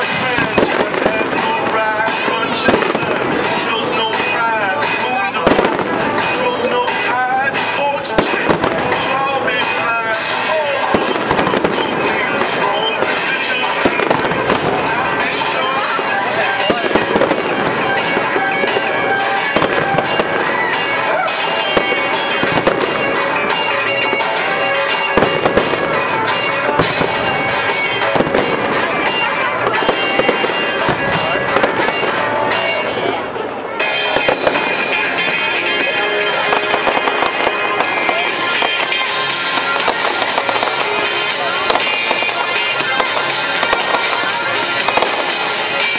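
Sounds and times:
fireworks bangs and crackles: 0.0s - 45.9s
music playing: 0.0s - 45.9s.

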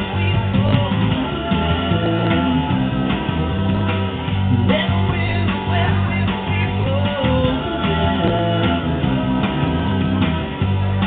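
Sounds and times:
loud rock band with guitar: 0.0s - 11.0s.

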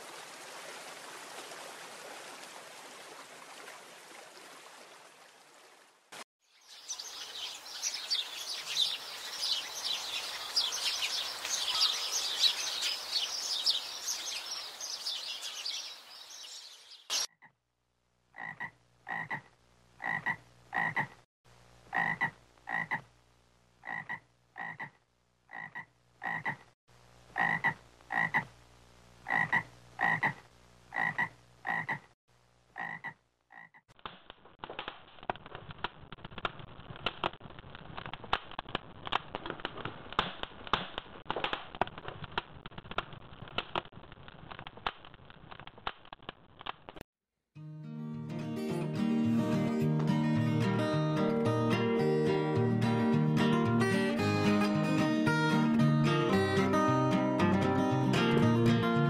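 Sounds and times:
chorus of high chirping calls: 6.7s - 17.3s
frog croaking: 18.3s - 21.2s, 21.9s - 23.1s, 23.8s - 26.7s, 27.3s - 28.5s, 29.2s - 32.1s, 32.8s - 33.8s.

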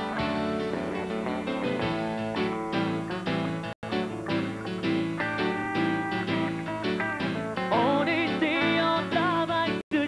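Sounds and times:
country band playing: 0.0s - 9.8s
man singing: 7.7s - 10.0s.

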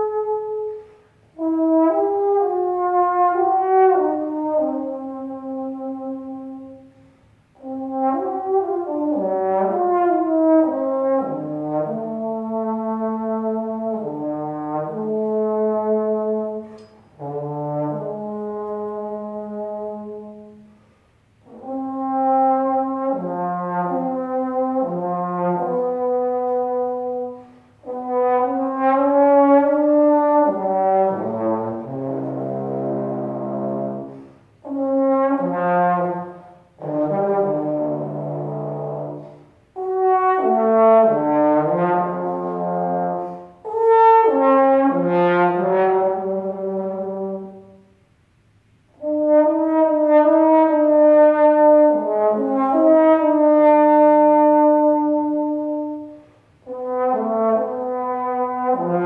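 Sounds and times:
trombone melody: 0.0s - 48.0s, 48.9s - 59.0s.

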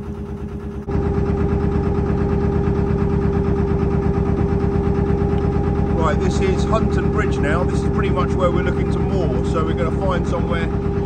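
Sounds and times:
boat engine running steadily: 0.0s - 11.0s.

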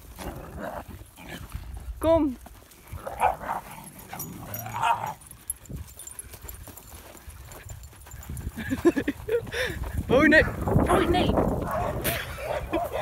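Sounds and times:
dogs barking and yipping: 2.8s - 9.6s, 11.4s - 13.0s.

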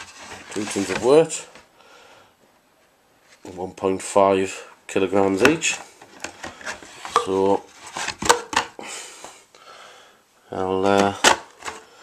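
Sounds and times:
cardboard rustling: 0.0s - 1.6s, 5.4s - 8.7s.

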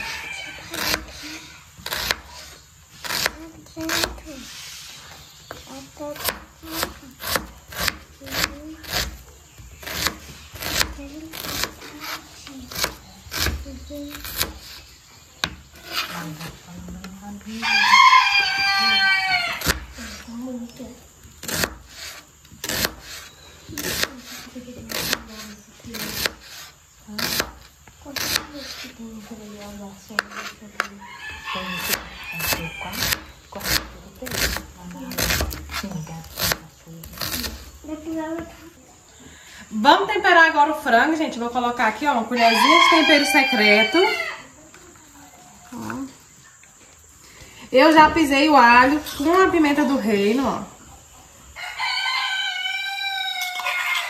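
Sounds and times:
rooster crowing: 0.0s - 1.3s, 17.5s - 19.9s, 31.0s - 33.3s, 42.2s - 44.6s, 51.5s - 54.0s
knife chopping on cutting board: 23.8s - 26.6s.

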